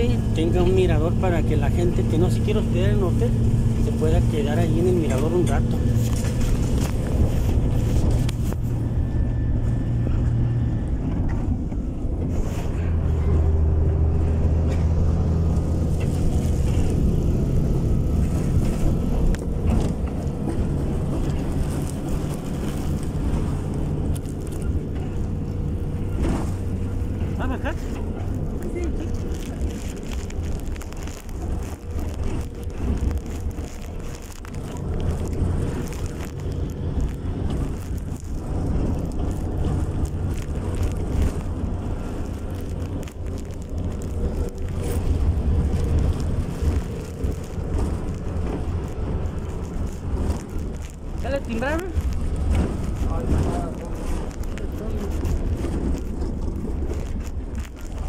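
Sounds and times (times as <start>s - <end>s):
bus engine and road rumble: 0.0s - 58.0s.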